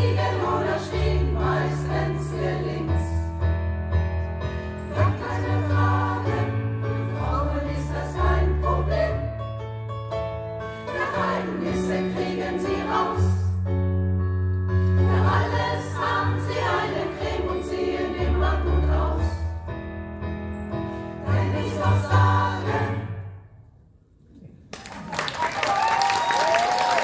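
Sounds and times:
women's choir singing: 0.0 - 3.5, 4.7 - 9.5, 10.8 - 13.6, 14.9 - 19.6, 21.2 - 23.3.

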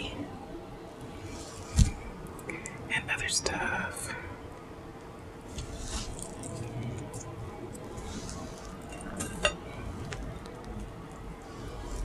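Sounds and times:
plastic packet crinkling and squishing: 6.0 - 9.2.

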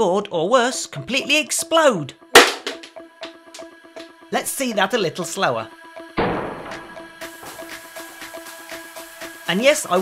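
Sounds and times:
capacitor bursting with sharp bang: 2.4 - 2.8, 6.2 - 6.8.

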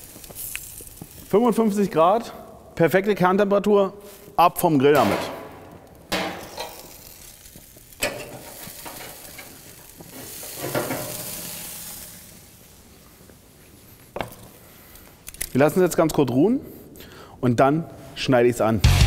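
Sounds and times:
steak sizzling on a grill: 0.0 - 1.9, 5.8 - 13.1.

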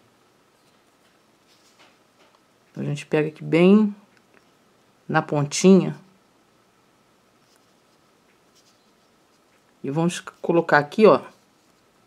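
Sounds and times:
low room hiss: 0.0 - 12.0
crochet hook rubbing thread: 7.4 - 9.5
woman speaking: 9.8 - 11.3.

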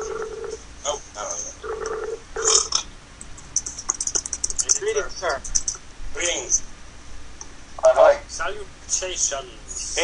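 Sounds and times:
wordless voice sounds: 0.8 - 1.6.

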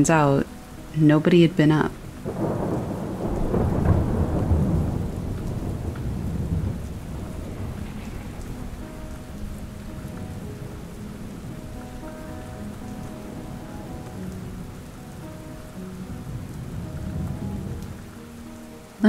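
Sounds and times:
soft music with held notes: 0.0 - 19.0
steady rain: 0.0 - 19.0
low roll of thunder: 2.2 - 18.1.

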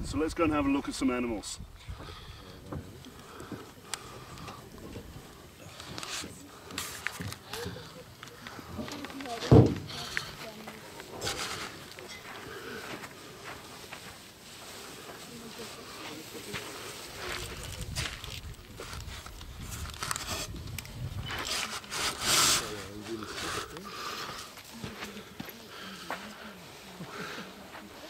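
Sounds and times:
snake dragging over sand: 10.0 - 24.6.

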